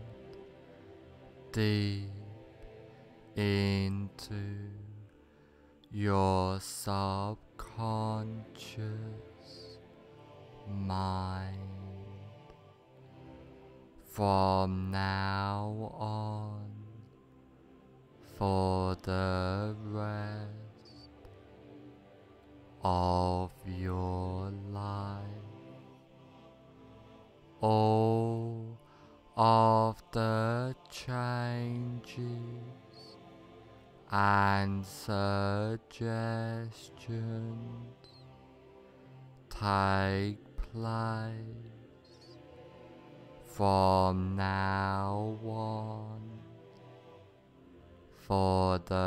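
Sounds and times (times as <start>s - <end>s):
deep male voice chanting: 0.0s - 0.4s, 1.3s - 10.0s, 10.6s - 12.6s, 14.0s - 17.2s, 18.2s - 21.4s, 22.8s - 26.6s, 27.5s - 33.3s, 34.0s - 38.4s, 39.0s - 46.8s, 48.1s - 49.0s
meditation music: 0.0s - 49.0s.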